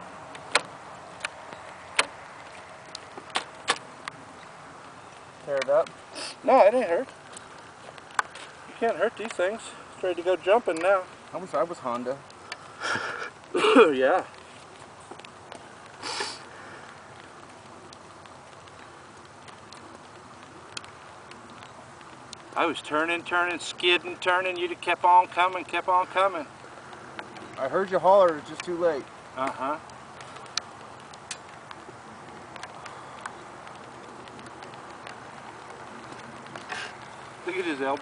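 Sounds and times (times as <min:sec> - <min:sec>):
outdoor background hiss: 0:00.0 - 0:38.0
faint clicks: 0:14.3 - 0:22.6, 0:26.4 - 0:38.0.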